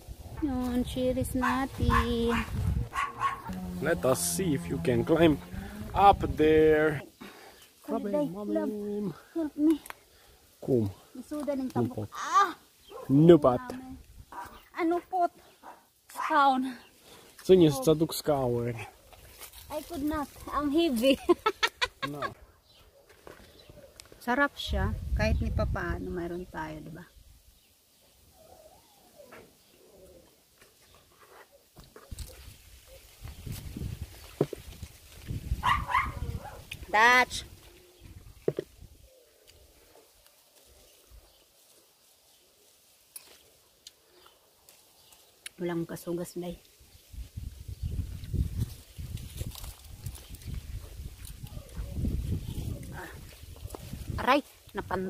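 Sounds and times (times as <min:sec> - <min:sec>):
branches rustling: 0:00.0 - 0:25.1, 0:25.8 - 0:55.0
distant animal calls: 0:01.4 - 0:06.3, 0:28.3 - 0:30.4.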